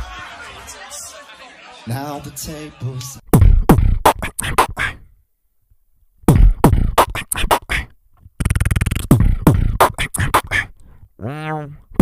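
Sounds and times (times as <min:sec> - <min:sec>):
beatboxing into a microphone: 0:02.9 - 0:05.1, 0:06.2 - 0:12.0.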